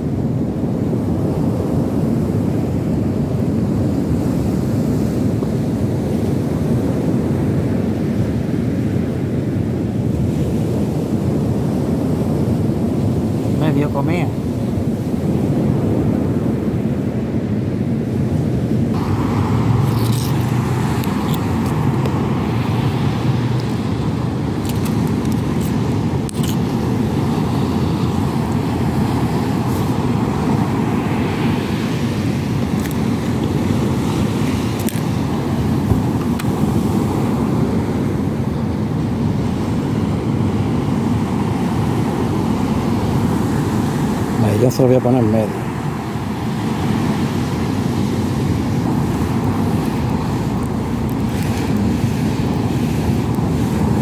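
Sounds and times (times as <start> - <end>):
rough surf rumbling: 0.0 - 54.0
wind on microphone: 0.0 - 54.0.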